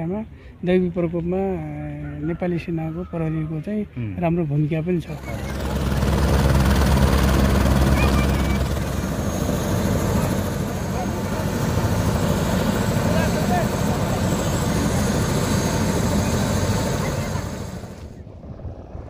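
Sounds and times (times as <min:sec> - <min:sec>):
helicopter rotor beat: 0:05.0 - 0:19.0
high turbine whine: 0:05.0 - 0:19.0.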